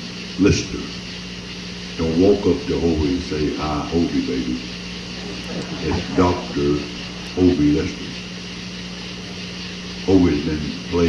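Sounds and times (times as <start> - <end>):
constant even hiss: 0.0 - 11.0
steady low hum: 0.0 - 11.0.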